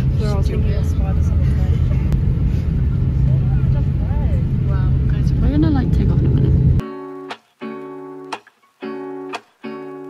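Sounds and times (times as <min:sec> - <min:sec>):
airplane cabin engine drone: 0:00.0 - 0:06.8.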